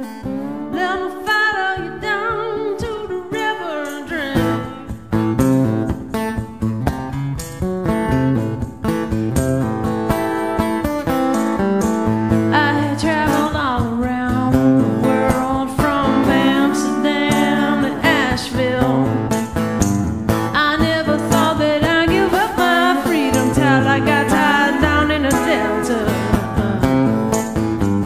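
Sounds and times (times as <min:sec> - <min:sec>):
woman singing: 0:00.0 - 0:05.0, 0:12.5 - 0:19.5, 0:20.5 - 0:27.6
acoustic guitar strumming: 0:00.0 - 0:28.0.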